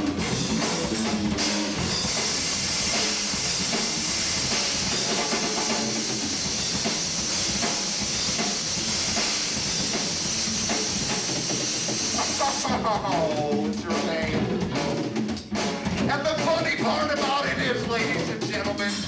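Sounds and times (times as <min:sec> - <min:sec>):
bass guitar: 0:00.0 - 0:19.0
drum kit: 0:00.0 - 0:19.0
crashing cymbal wash: 0:00.3 - 0:12.7.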